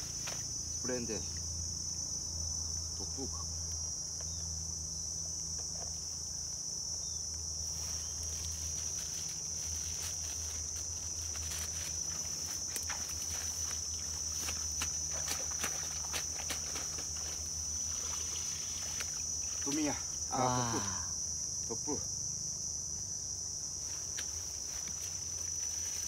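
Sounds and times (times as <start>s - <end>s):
high-pitched insect chorus: 0.0s - 26.0s.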